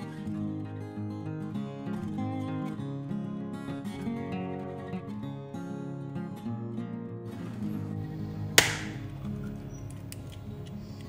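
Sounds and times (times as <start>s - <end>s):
acoustic guitar music: 0.0s - 11.0s
egg shell cracking: 8.6s - 9.1s.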